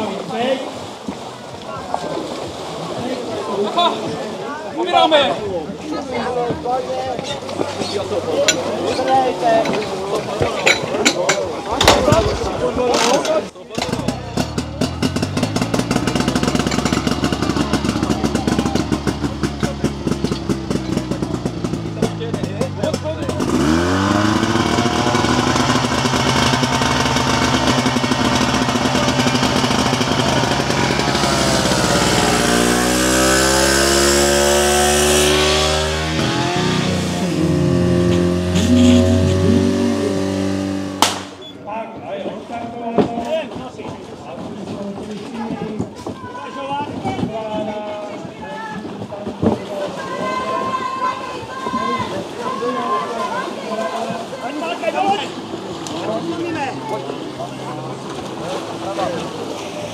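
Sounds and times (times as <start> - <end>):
small pump engine revving: 13.8 - 41.4.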